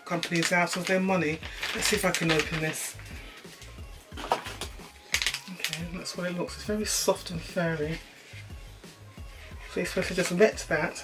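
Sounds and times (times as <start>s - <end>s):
packaging crinkling: 0.0s - 3.1s, 4.2s - 5.9s.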